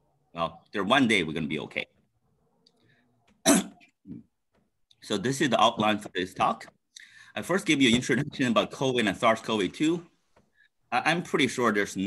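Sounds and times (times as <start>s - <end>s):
man coughing: 3.4s - 3.9s.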